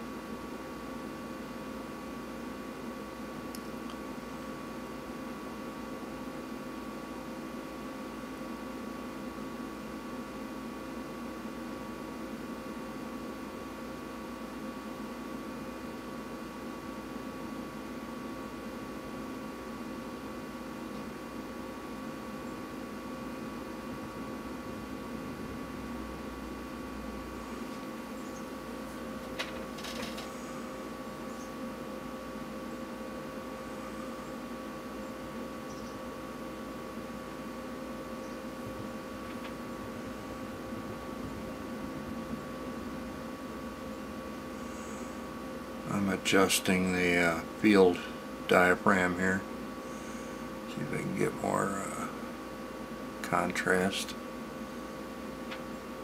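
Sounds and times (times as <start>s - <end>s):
steady hum and hiss: 0.0s - 56.0s.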